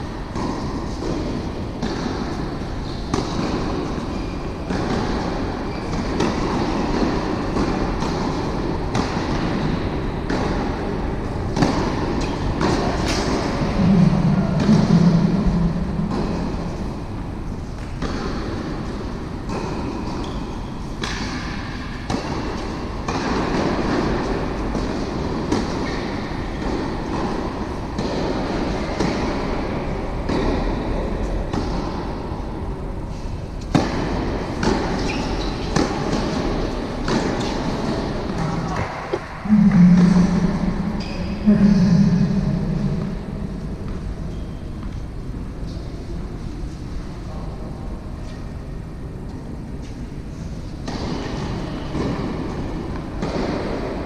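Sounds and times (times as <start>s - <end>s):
tennis balls struck by rackets: 0.0s - 33.0s, 33.6s - 45.1s, 50.8s - 54.0s
rumbling hall ambience: 0.0s - 54.0s
low hum: 13.2s - 17.7s, 38.3s - 46.6s.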